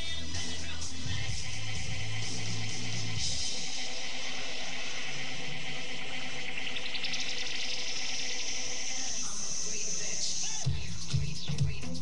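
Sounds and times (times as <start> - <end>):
hissing electronic noise sweep: 0.0 - 10.7
faint sustained tones: 1.0 - 10.6.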